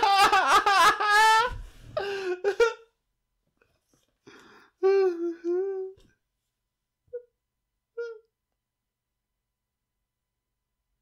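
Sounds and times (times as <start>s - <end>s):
man laughing with held vocal note: 0.0s - 3.0s.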